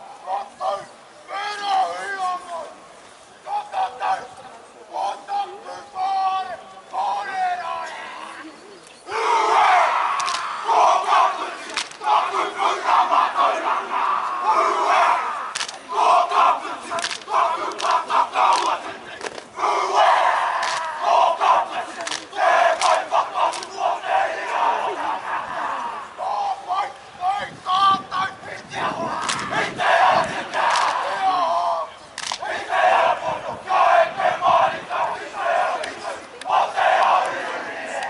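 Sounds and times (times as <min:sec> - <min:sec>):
men shouting a chant: 0:09.1 - 0:38.0.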